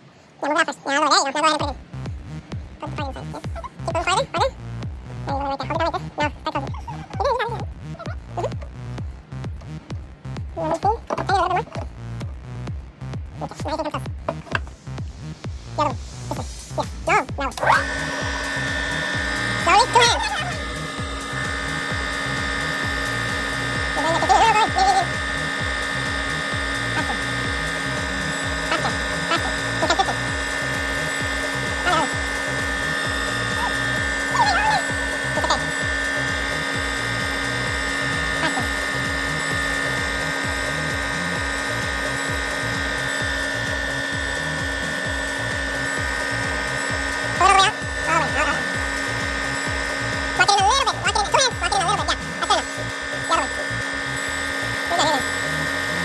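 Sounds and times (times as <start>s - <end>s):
metal lathe humming and whining: 17.6s - 56.0s.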